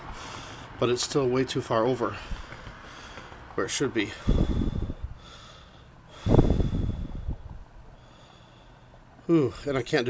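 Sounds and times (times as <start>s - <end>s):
faint background hiss: 0.0s - 10.0s
person breathing out: 4.2s - 8.8s.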